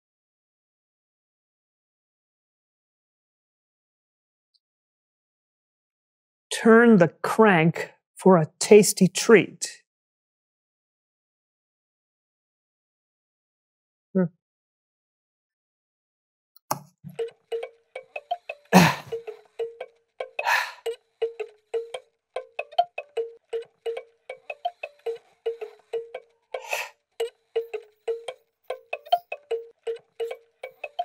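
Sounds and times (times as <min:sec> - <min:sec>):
music box plinking a tune: 0:17.1 - 0:31.0.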